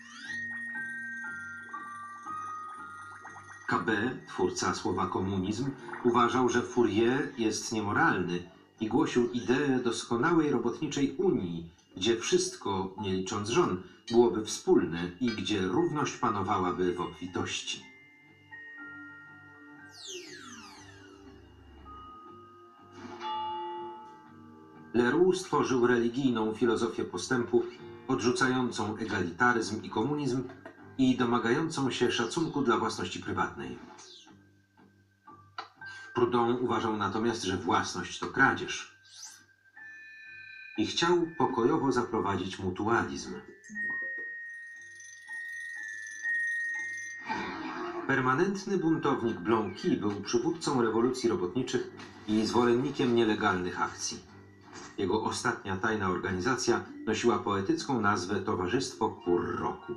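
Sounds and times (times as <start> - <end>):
glittering falling glide effect: 0.0 - 6.6, 19.9 - 21.8
high chime ringing tone: 0.0 - 10.7, 13.2 - 26.4, 38.5 - 51.6
soft background music: 0.0 - 59.9.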